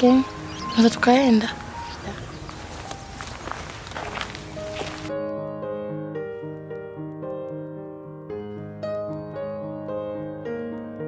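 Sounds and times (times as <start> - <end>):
outdoor background noise: 0.0 - 5.1
footsteps on dry dirt: 1.5 - 5.1.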